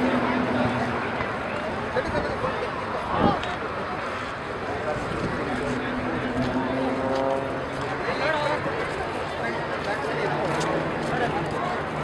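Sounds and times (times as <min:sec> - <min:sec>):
propeller planes droning: 0:00.0 - 0:12.0.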